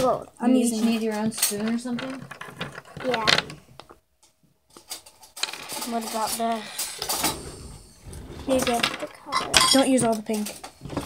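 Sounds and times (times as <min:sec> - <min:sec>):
child's voice: 0:03.0 - 0:03.5, 0:05.8 - 0:06.8, 0:08.5 - 0:10.5.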